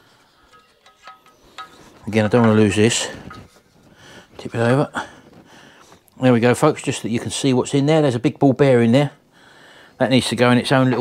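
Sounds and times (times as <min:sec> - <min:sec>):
metallic clicks and tinks: 0:00.1 - 0:03.8.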